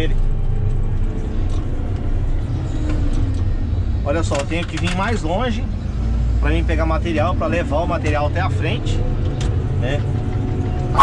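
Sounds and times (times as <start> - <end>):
diesel engine low rumble: 0.0 - 11.0.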